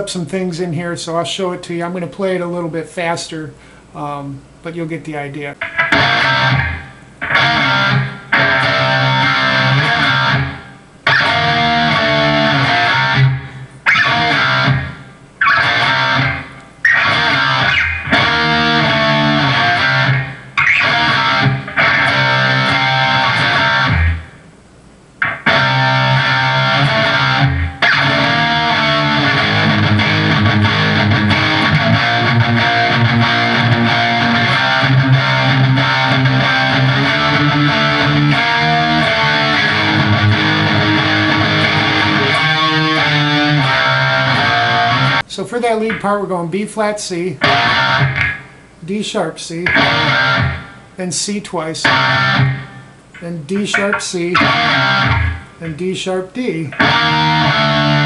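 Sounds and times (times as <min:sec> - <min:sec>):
electric guitar riff: 0:05.5 - 0:24.5, 0:25.2 - 0:58.0.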